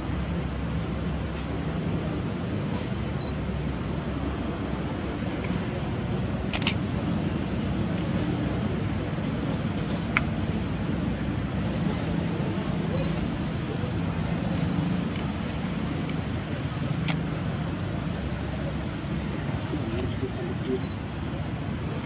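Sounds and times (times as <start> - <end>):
distant voices: 0.0 - 22.0
low outdoor hum: 0.0 - 22.0.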